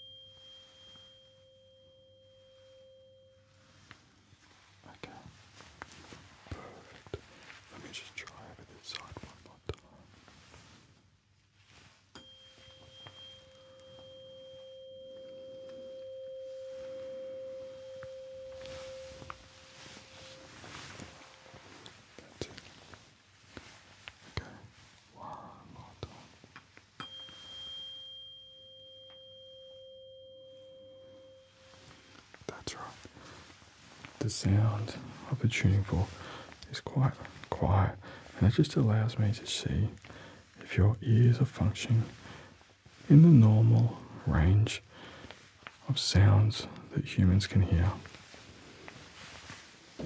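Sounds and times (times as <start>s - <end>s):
tuning fork ringing: 0.0s - 4.7s, 11.8s - 22.0s, 26.6s - 36.6s.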